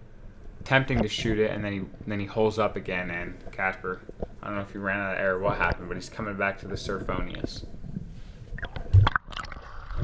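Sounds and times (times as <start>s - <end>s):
water sloshing and gurgling: 7.7s - 10.0s.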